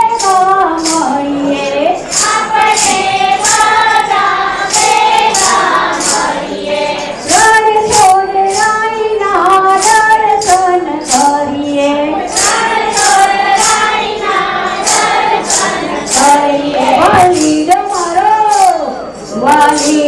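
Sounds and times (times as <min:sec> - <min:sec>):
high percussion beat: 0:00.0 - 0:20.0
women's voices singing devotional song: 0:00.0 - 0:20.0.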